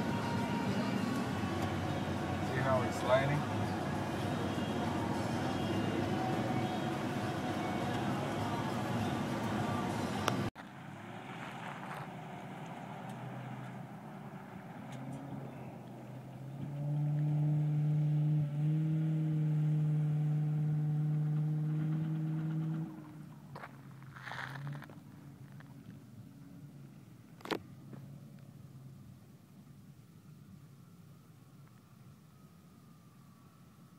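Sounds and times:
distant truck engine climbing: 0:00.0 - 0:33.4
truck engine and road noise: 0:00.0 - 0:33.9.

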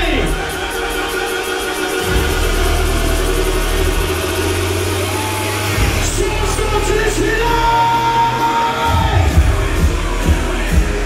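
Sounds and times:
heavy sustained bass: 0:00.0 - 0:11.0
loud club music: 0:00.0 - 0:11.0.

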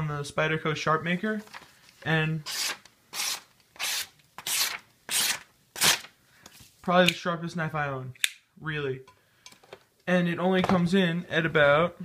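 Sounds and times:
knife slicing paper: 0:02.6 - 0:06.1.

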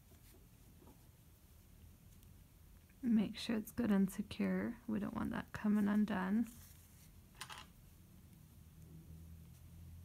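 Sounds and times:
soft fabric rustle: 0:00.0 - 0:03.4, 0:04.1 - 0:10.0.

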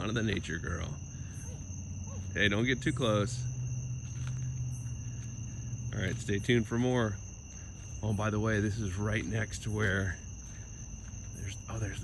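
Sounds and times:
crickets droning: 0:00.0 - 0:12.0.

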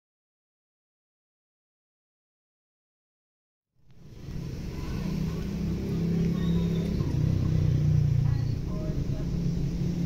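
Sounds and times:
vehicle engine and road noise: 0:03.8 - 0:10.0.

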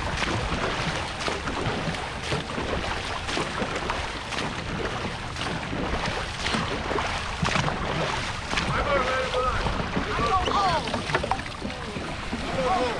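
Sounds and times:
paddles splashing through water: 0:00.0 - 0:12.9
voices calling out: 0:08.6 - 0:12.9.

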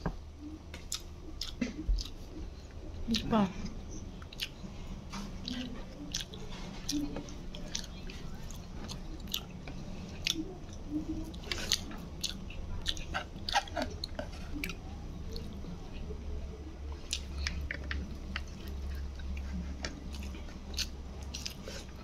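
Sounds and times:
person chewing food: 0:00.0 - 0:03.3, 0:04.0 - 0:16.2, 0:16.8 - 0:22.0
low steady hum: 0:00.0 - 0:22.0
mouth clicks and smacks: 0:00.7 - 0:02.2, 0:04.2 - 0:04.6.

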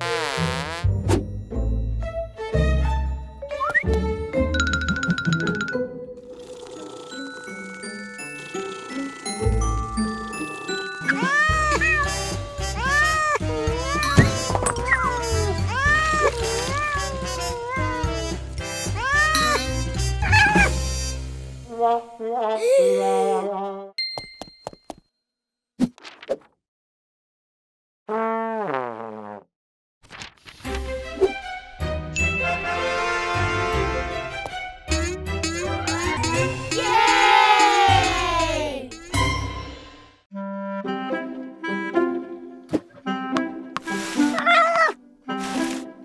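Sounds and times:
background music: 0:00.5 - 0:22.1, 0:30.7 - 0:46.0
low background music: 0:08.5 - 0:21.7
cat meowing: 0:11.1 - 0:18.2, 0:44.3 - 0:45.0.

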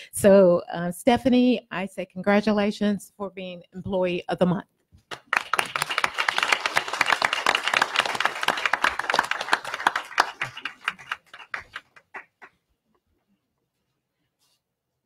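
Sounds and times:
small group clapping: 0:05.0 - 0:12.6.

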